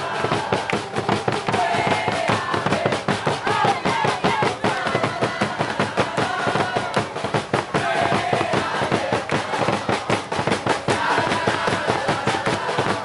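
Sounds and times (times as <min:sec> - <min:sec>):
crowd singing a chant: 0:00.0 - 0:13.0
fans clapping: 0:00.0 - 0:13.0.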